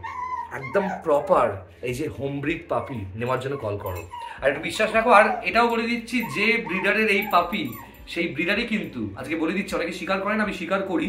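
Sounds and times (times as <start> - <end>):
dog whining: 0.0 - 1.3, 2.7 - 8.1
man talking: 0.5 - 11.0.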